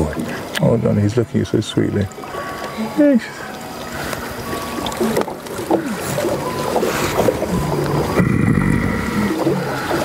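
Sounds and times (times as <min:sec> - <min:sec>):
gorilla rumbling vocalisation: 0:07.5 - 0:09.9.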